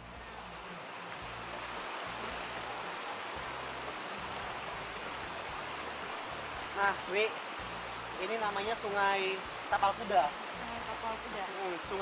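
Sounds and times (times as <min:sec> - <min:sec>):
river rushing over rocks: 0:00.0 - 0:12.0.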